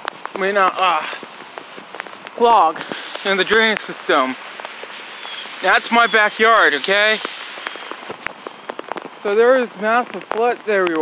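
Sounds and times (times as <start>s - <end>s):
rain falling: 0.0s - 11.0s
raindrops ticking close by: 0.0s - 11.0s.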